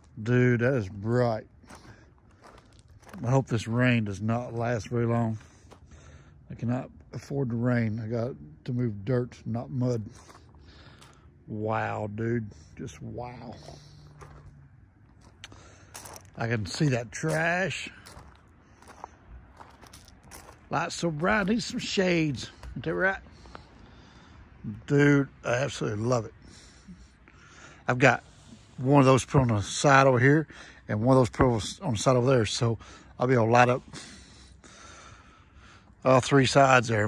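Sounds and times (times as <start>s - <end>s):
faint footsteps on gravel: 0.0s - 26.6s
faint breathing: 1.6s - 3.1s, 5.4s - 6.5s, 10.1s - 11.5s, 12.4s - 16.3s, 17.8s - 20.5s, 22.5s - 24.6s, 26.3s - 28.9s, 30.4s - 30.9s, 32.8s - 33.2s, 33.8s - 36.0s.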